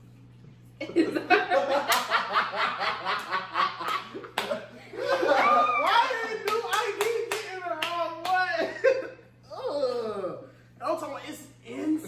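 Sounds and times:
hands clapping: 1.8 - 2.2, 3.1 - 4.6, 5.8 - 8.5.

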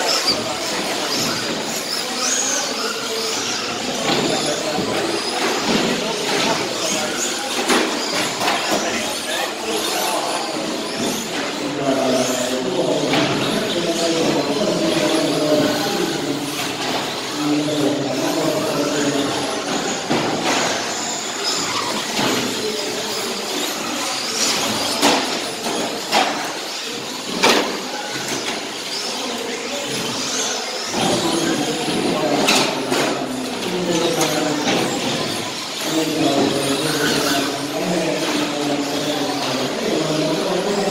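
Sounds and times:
rc truck motors whining: 0.0 - 40.9.

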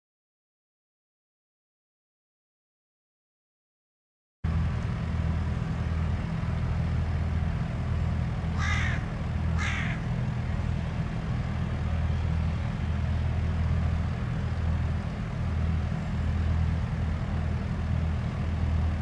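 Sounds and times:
steady low rumble: 4.4 - 19.0
harsh bird calls: 8.5 - 10.2.

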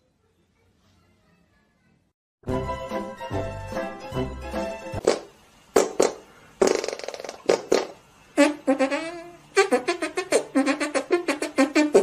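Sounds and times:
brass music: 2.4 - 5.0, 8.4 - 12.0
fart sounds: 5.0 - 12.0.

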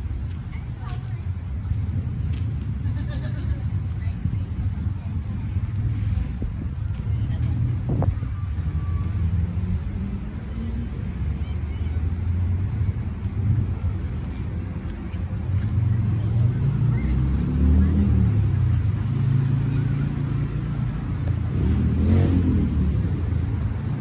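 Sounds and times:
cars going by: 0.0 - 24.0
vehicle passing close: 15.7 - 24.0.

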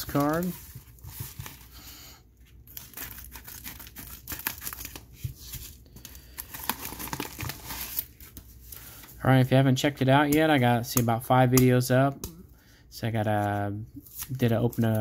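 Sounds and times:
plastic mailer crinkling and tearing: 0.0 - 1.8, 2.7 - 5.4, 6.0 - 8.4.

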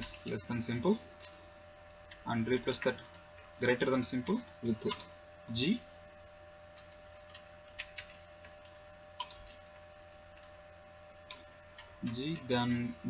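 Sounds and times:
low electrical hum: 0.0 - 13.0
keyboard clicks: 4.6 - 5.1, 6.8 - 10.6, 11.3 - 13.0.

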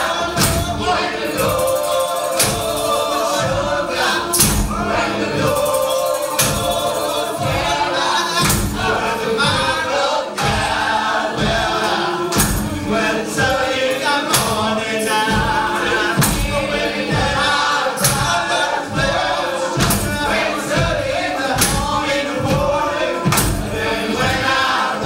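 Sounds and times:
choir singing in harmony: 0.0 - 25.0
tambourines and hand percussion: 0.0 - 25.0.

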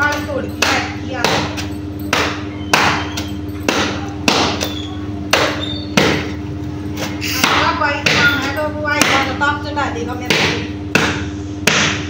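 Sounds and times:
washing bat beating wet laundry: 0.0 - 6.4, 7.0 - 9.5, 10.2 - 12.0
steady low hum: 0.0 - 12.0.

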